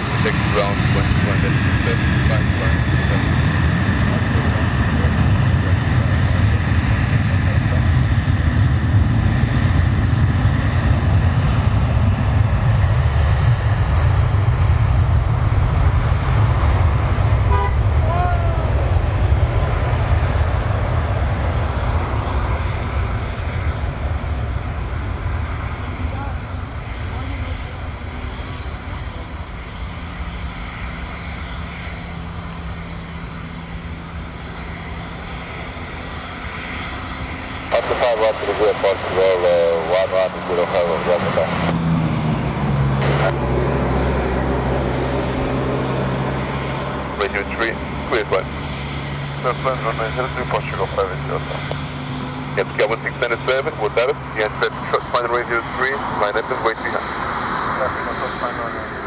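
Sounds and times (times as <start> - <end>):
jet engines rumbling: 0.0 - 59.0.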